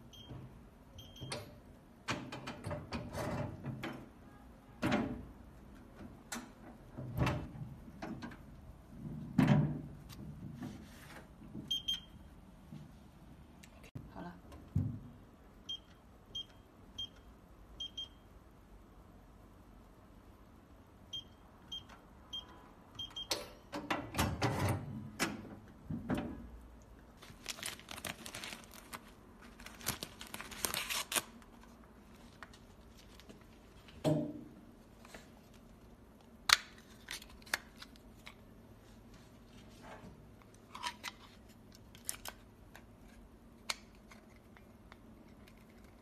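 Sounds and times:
keypad beeps: 0:11.7 - 0:12.2, 0:15.7 - 0:18.2, 0:21.1 - 0:23.4.

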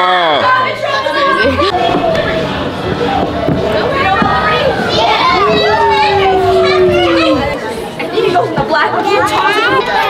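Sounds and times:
children shouting and squealing: 0:00.0 - 0:10.0
child long held call: 0:01.5 - 0:07.6.

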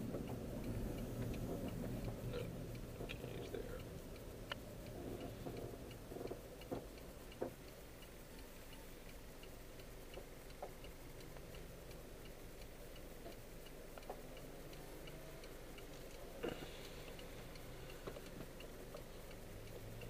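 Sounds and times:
car turn signal ticking: 0:00.0 - 0:20.0
road and engine rumble: 0:00.0 - 0:20.0.

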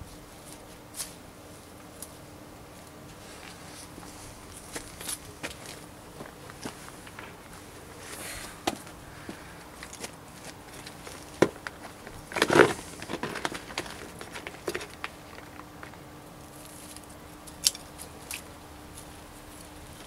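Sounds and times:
soft crackling of soil spread by hand: 0:00.0 - 0:17.3.

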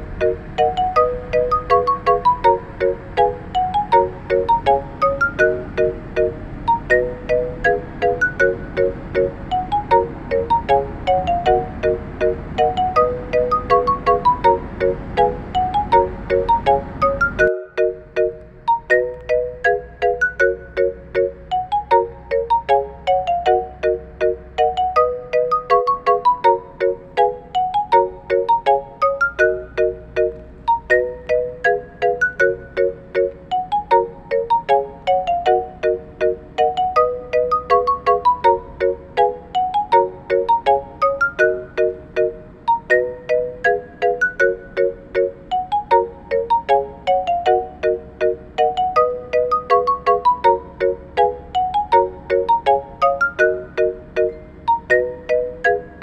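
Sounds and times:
bell-like ringtone melody: 0:00.0 - 0:56.0.

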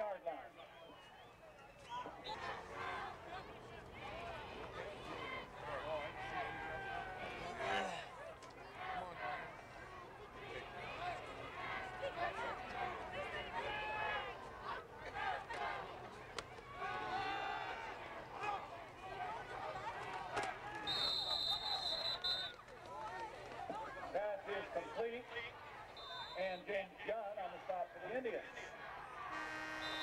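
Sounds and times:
spectators talking and calling out: 0:00.0 - 0:30.0
referee's whistle blast: 0:20.8 - 0:22.6, 0:26.0 - 0:26.7, 0:29.3 - 0:30.0.

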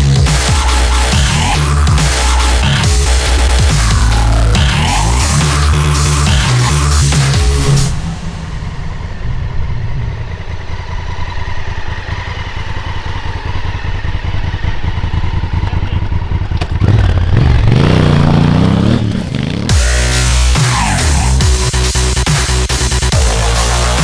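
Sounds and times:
motorcycle engine idling and revving: 0:00.0 - 0:24.0.

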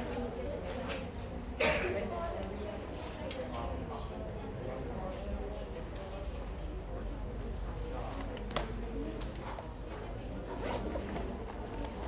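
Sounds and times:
murmur of students talking: 0:00.0 - 0:12.0.

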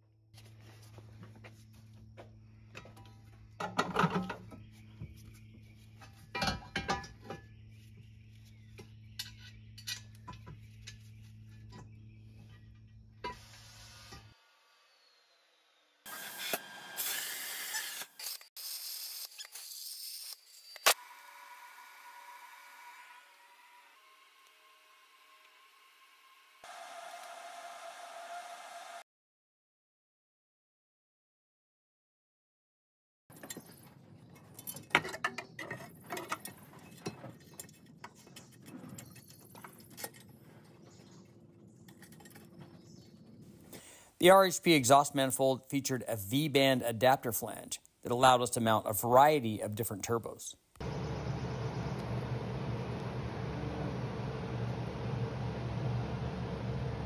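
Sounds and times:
metal parts clinking and knocking: 0:06.0 - 0:07.4, 0:33.3 - 0:40.8
high-pitched machine whine: 0:50.8 - 0:57.0
steady low hum: 0:50.8 - 0:57.0.

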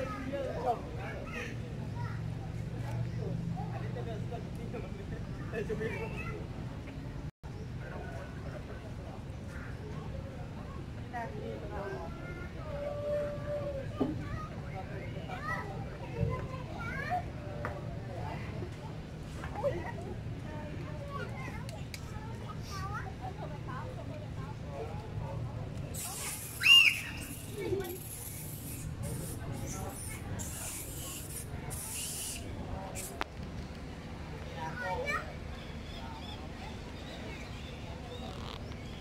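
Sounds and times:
faint background voices: 0:00.0 - 0:39.0
high hissing: 0:25.9 - 0:33.2
short high rising calls: 0:26.0 - 0:29.0.

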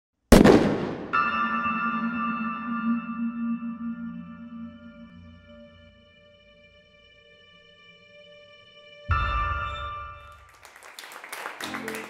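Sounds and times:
shimmering bell-like chord: 0:01.2 - 0:06.7, 0:09.1 - 0:10.5.

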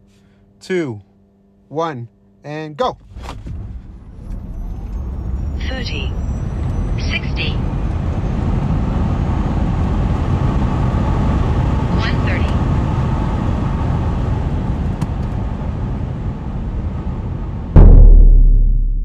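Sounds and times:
road and wind noise in car: 0:03.0 - 0:17.8
loud drum boom: 0:17.7 - 0:19.0.

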